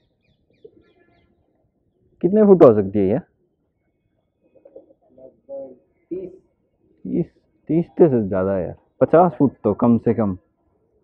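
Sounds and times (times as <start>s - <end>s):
man's voice: 2.2s - 3.2s, 7.1s - 10.4s.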